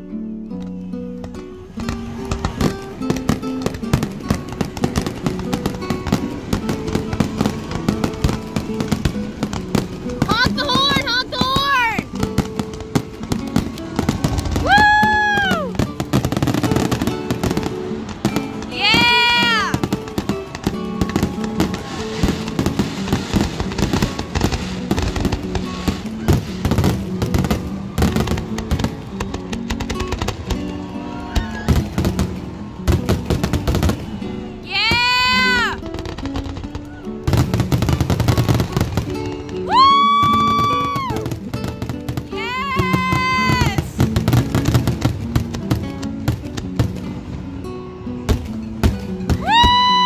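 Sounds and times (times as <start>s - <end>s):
music playing: 0.0s - 50.0s
fireworks bangs and crackles: 1.2s - 50.0s.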